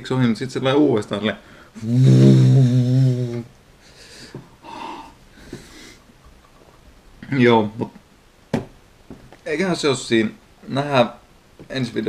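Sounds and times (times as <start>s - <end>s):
breathy exhales: 1.5s - 6.0s
man crying out in pain: 1.8s - 3.5s.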